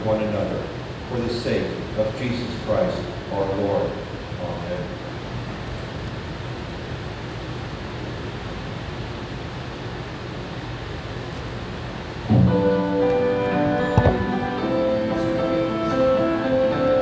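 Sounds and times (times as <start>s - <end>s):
room noise hiss: 0.0s - 17.0s
instrumental hymn chords: 12.3s - 17.0s.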